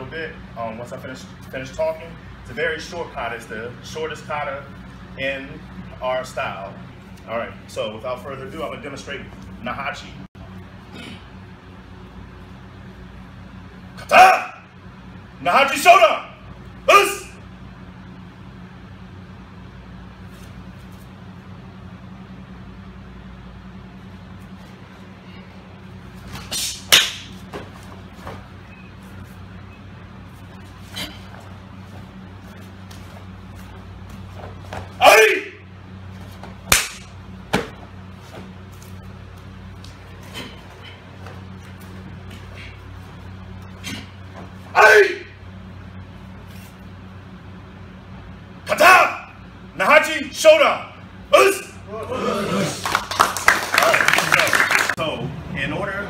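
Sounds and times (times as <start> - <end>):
low hum: 0.0 - 52.8
person shouting: 14.0 - 14.6, 16.9 - 17.4, 35.0 - 35.6, 44.7 - 45.4, 48.7 - 49.4, 51.3 - 52.8
snaps of uniform cloth: 36.7 - 37.8.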